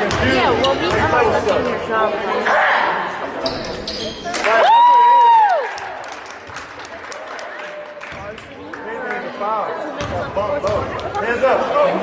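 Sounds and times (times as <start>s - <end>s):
spectators talking: 0.0s - 5.4s, 6.0s - 12.0s.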